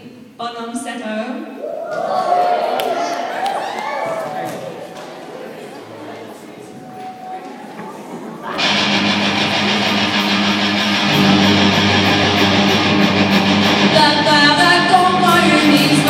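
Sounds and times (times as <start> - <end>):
rock band playing: 8.6 - 16.0.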